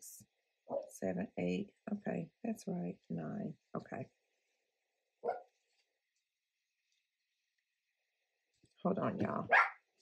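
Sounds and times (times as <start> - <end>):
dog barking: 5.2 - 5.5, 9.5 - 9.8.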